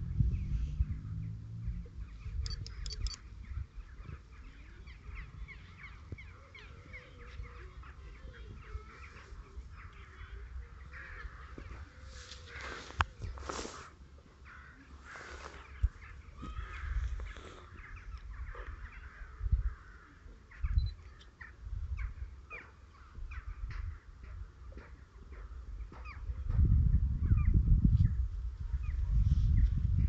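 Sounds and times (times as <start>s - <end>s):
wind buffeting microphone: 0.0s - 11.9s, 15.6s - 20.0s, 21.6s - 22.4s, 23.1s - 30.0s
birds calling harshly: 2.1s - 25.0s.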